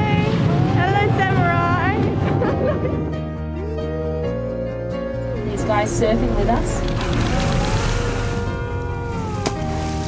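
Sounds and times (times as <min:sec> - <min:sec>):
boat engine rumble: 0:00.0 - 0:10.0
rushing water: 0:05.5 - 0:10.0
high voice singing long notes: 0:07.2 - 0:10.0.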